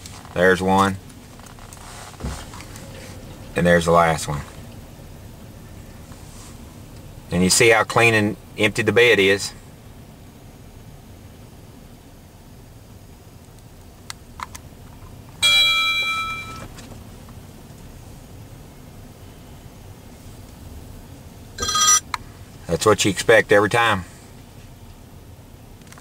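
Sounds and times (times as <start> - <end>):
truck engine rumble: 0.0 - 26.0
metal clang ringing: 15.4 - 16.7, 21.6 - 22.1.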